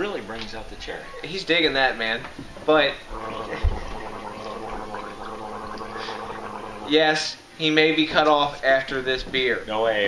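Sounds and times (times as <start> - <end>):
man gargling: 3.1 - 7.0.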